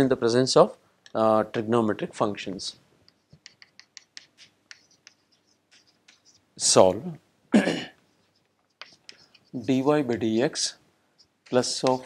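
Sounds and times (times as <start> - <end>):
chalk tapping and scratching: 3.0 - 7.0, 8.0 - 12.0.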